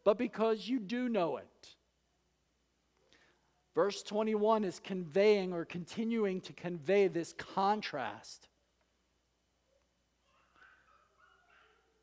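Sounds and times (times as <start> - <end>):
faint high-pitched sounds: 9.6 - 12.0.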